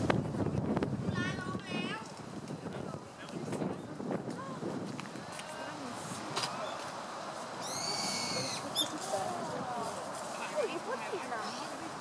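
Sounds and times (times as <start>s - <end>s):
bird calling: 7.6s - 9.1s.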